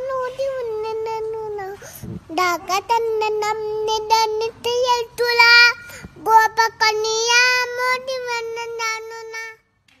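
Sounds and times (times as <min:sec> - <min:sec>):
toddler girl singing: 0:00.0 - 0:09.7.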